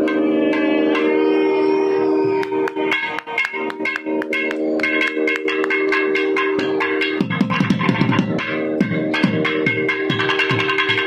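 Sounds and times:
nadaswaram holding a long note: 0.0s - 11.0s
ringing metallic percussion: 0.0s - 11.0s.

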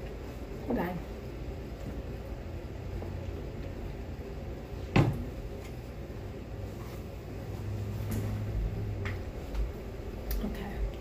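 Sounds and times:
room fan running: 0.0s - 11.0s
faint handling sounds: 5.4s - 9.9s.

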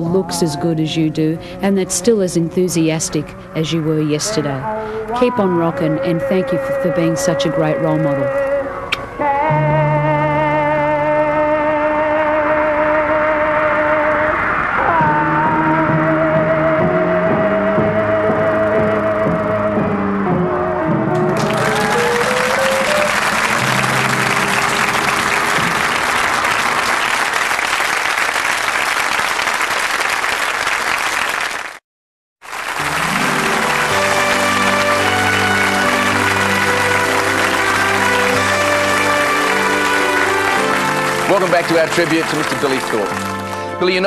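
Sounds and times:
band playing sustained chords: 1.9s - 26.6s, 32.6s - 44.0s
live pop song: 4.3s - 22.2s
crowd cheering and applause: 21.2s - 31.8s, 32.4s - 44.0s.

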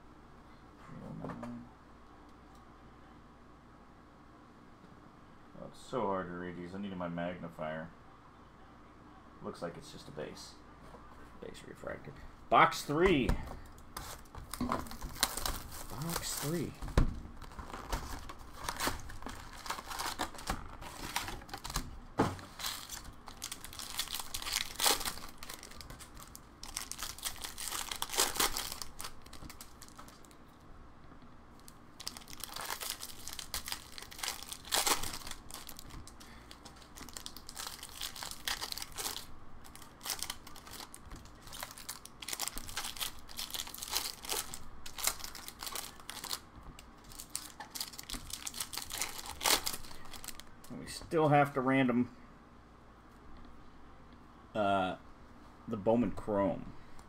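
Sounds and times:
wrapper crinkling and tearing: 14.0s - 30.4s, 31.6s - 50.5s.

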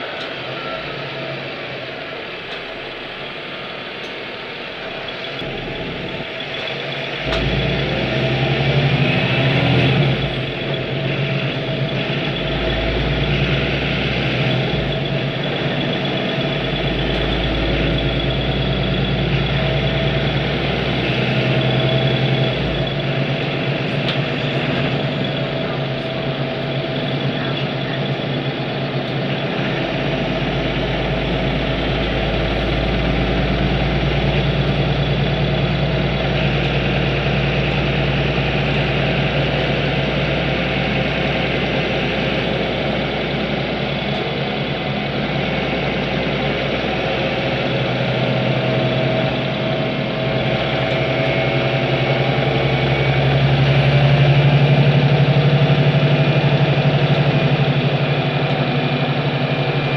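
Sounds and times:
bus engine drone: 0.0s - 59.9s.

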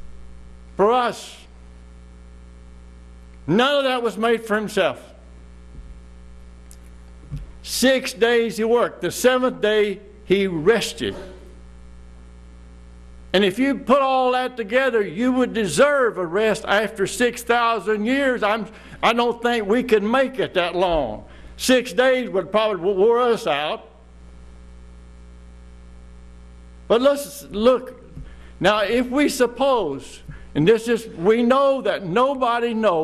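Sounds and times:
electrical mains hum: 0.0s - 33.0s
man's voice echoing: 0.8s - 1.5s, 3.5s - 5.3s, 7.6s - 11.5s, 13.4s - 24.0s, 26.9s - 33.0s.

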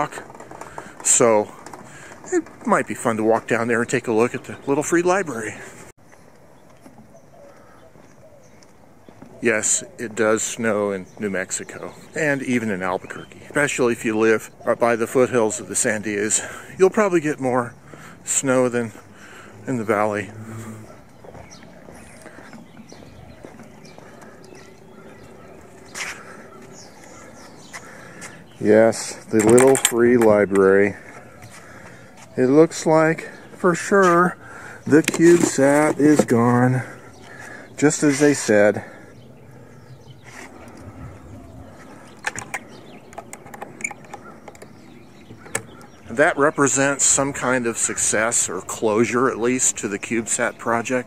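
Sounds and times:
footsteps on concrete: 5.5s - 9.4s, 17.8s - 18.2s, 20.9s - 28.4s, 30.2s - 32.4s, 33.2s - 39.0s.

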